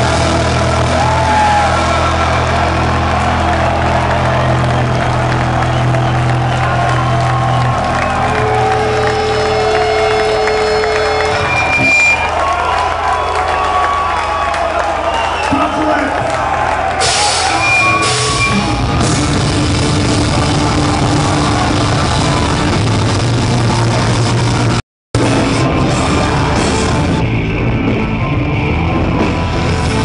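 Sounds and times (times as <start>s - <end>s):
heavy metal band playing live: 0.0s - 12.8s, 16.9s - 30.0s
crowd cheering and whooping: 0.0s - 24.7s.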